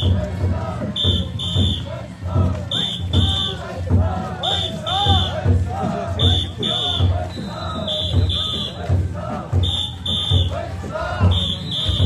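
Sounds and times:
crowd voices: 0.0 - 12.0
low thumping beat: 0.0 - 12.0
shrill whistle blasts: 1.0 - 2.0, 2.7 - 3.6, 4.4 - 5.4, 6.2 - 8.8, 9.6 - 10.6, 11.3 - 12.0.

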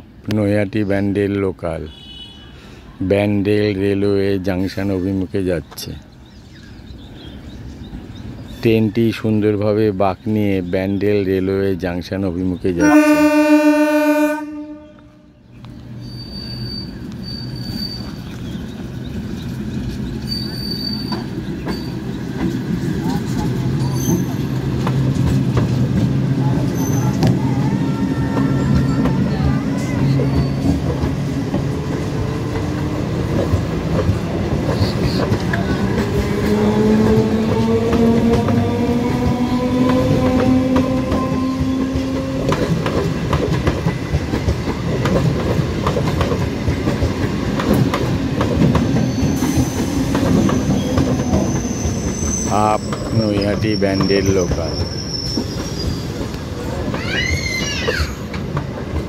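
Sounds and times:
train wheels rumbling on rail: 3.4 - 59.0.

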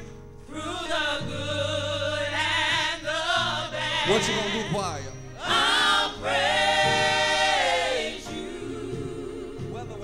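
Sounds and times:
gospel choir singing: 0.4 - 10.0.

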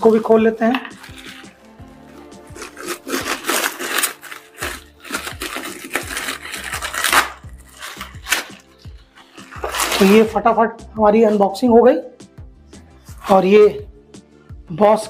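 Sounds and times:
plastic bag crinkling: 0.0 - 10.4
faint background music: 0.0 - 15.0.

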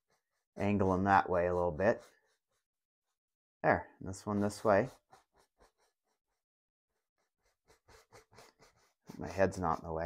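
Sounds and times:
brush dabbing paint on canvas: 0.0 - 3.2, 4.0 - 6.4, 7.0 - 10.0.

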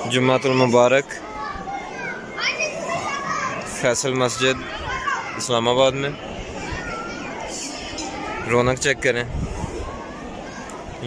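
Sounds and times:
children's voices: 0.0 - 11.0
crowd chatter: 0.0 - 11.0
child shouting: 0.5 - 3.8, 4.4 - 5.4.

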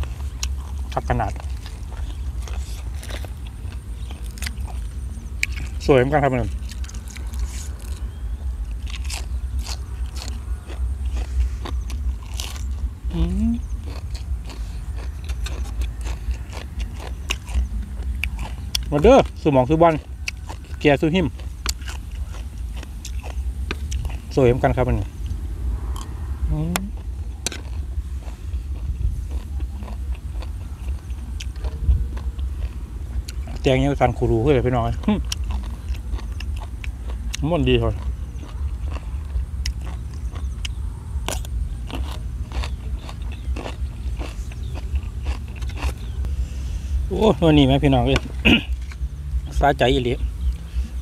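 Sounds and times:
crunchy chewing of cabbage: 0.0 - 51.0
low steady rumble: 0.0 - 51.0.

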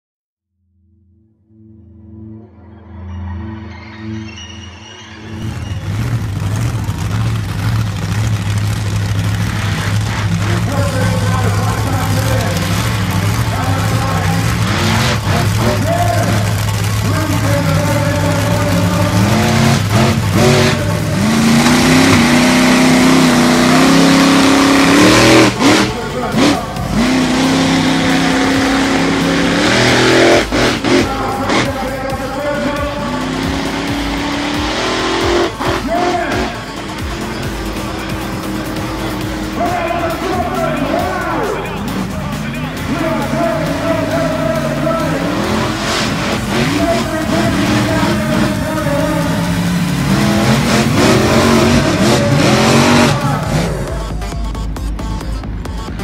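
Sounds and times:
truck engine revving: 5.3 - 56.0.

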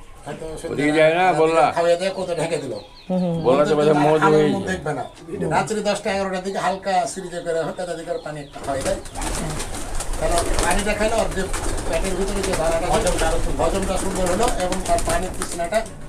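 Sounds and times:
pigeons cooing: 0.0 - 16.0
man's voice: 3.4 - 8.3.

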